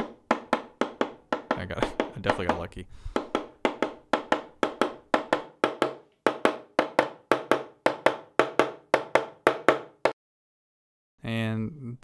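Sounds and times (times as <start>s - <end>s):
mallet tapping on wood: 0.0s - 10.2s.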